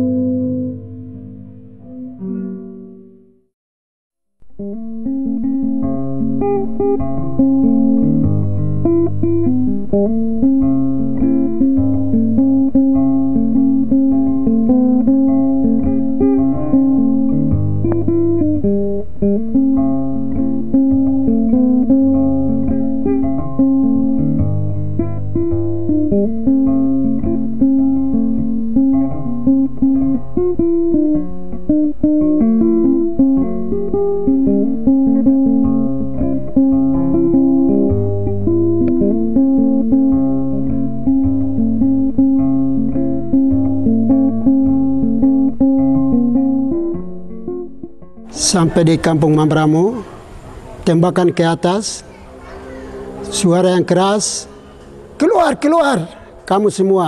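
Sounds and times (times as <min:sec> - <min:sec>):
plucked guitar: 0:00.0 - 0:03.5, 0:04.4 - 0:57.0
bass line: 0:04.9 - 0:49.9.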